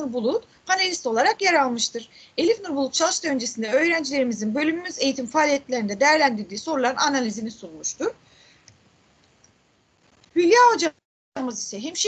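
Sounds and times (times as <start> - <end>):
woman speaking: 0.0 - 8.2, 10.3 - 12.0
faint hiss: 0.0 - 12.0.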